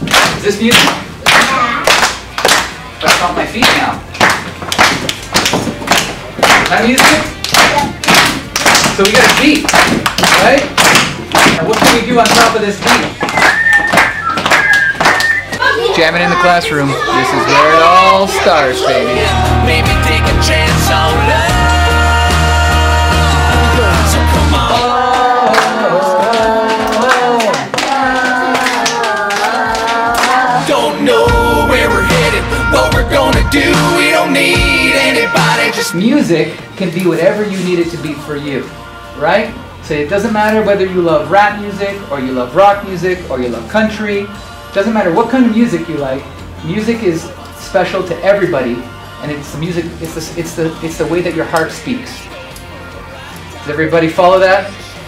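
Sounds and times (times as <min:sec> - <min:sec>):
hand claps: 0:00.0 - 0:15.6, 0:25.1 - 0:30.4
children clapping: 0:00.1 - 0:15.7, 0:25.0 - 0:30.7
foot stomps: 0:04.2 - 0:15.6
person singing: 0:17.4 - 0:36.1.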